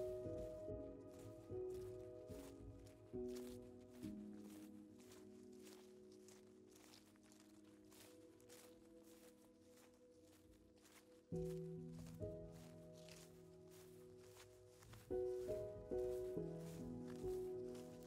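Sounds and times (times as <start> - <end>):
footsteps on dirt trail: 0.0 - 18.0
slow music of held chords: 0.0 - 18.0.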